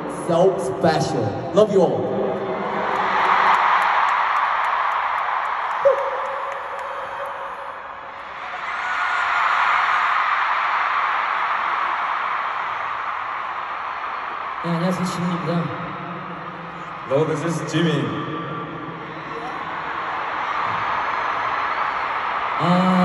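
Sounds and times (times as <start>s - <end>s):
arena crowd cheering and screaming: 0.0s - 23.0s.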